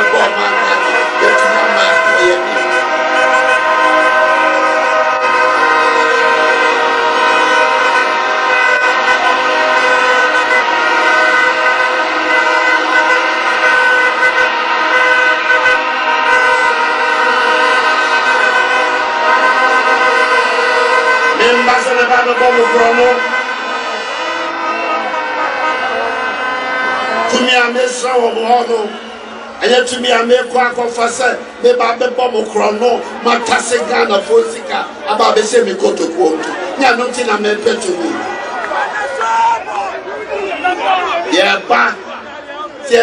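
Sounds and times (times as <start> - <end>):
crowd blowing horns: 0.0 - 43.0.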